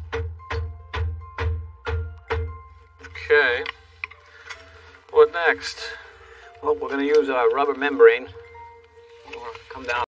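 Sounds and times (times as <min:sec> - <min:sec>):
man speaking: 0:05.1 - 0:08.4.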